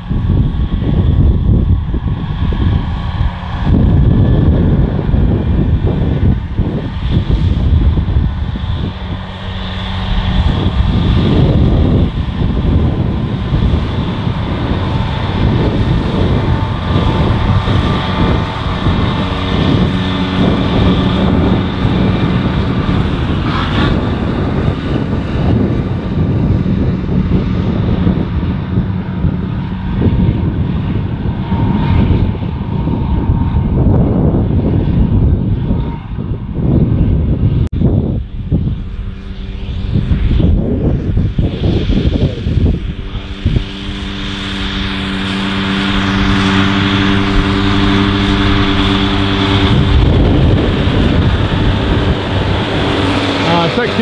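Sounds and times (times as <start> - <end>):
tractor diesel engines running: 0.0 - 35.4, 42.9 - 54.0.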